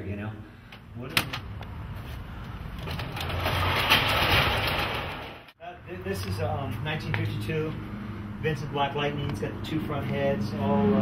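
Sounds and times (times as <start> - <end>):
garage door rolling open: 2.7 - 5.6.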